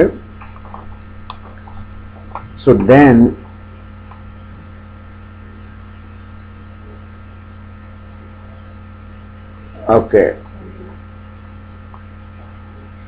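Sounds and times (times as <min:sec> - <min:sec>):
electrical hum: 0:00.0 - 0:13.0.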